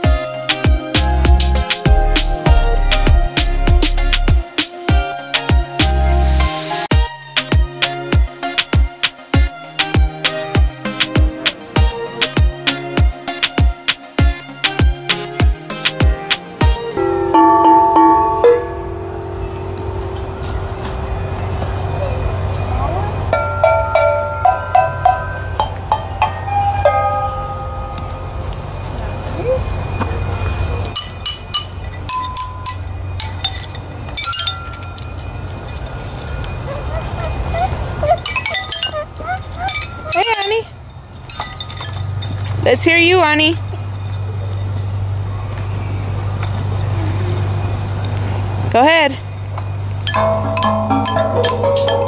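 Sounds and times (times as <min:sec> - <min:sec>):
mallets striking chime instruments: 0:16.9 - 0:20.8, 0:23.2 - 0:28.8, 0:30.9 - 0:45.0, 0:49.7 - 0:52.0
steady low hum: 0:17.0 - 0:23.4.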